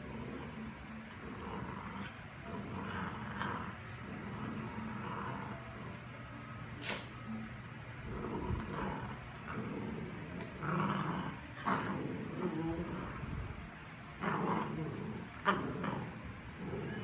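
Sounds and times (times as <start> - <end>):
dogs play growling and yipping: 0.0 - 17.0.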